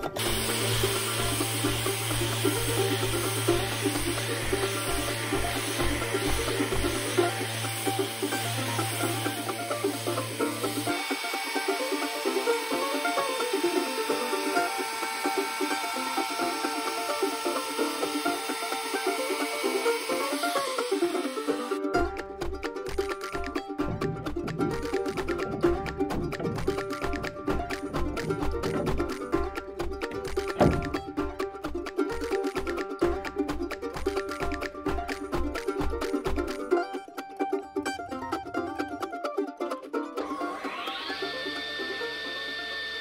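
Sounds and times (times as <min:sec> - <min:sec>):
background music: 0:00.0 - 0:43.0
orbital sander sanding wood: 0:00.2 - 0:21.8.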